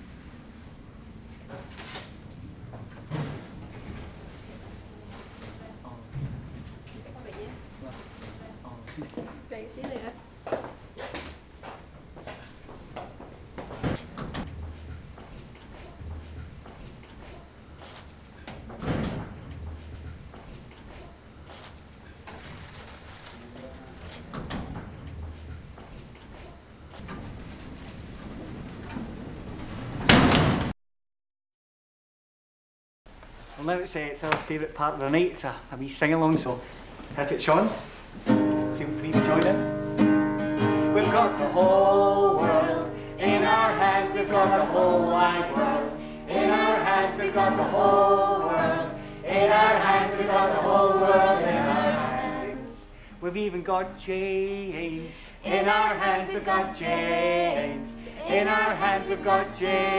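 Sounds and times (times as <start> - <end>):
metal lift doors banging shut: 13.8 - 15.2, 18.5 - 20.2, 27.0 - 30.7
metal lift doors sliding open: 13.8 - 22.2, 24.2 - 30.7.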